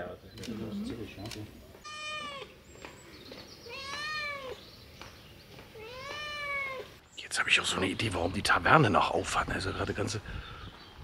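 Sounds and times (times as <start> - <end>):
cat meowing: 1.8 - 2.6, 3.7 - 4.6, 5.8 - 7.0.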